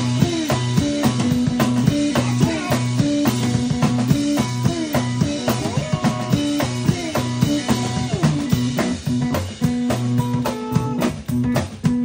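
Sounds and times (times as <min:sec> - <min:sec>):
drum kit beat: 0:00.0 - 0:12.0
guitar bending notes: 0:00.0 - 0:12.0.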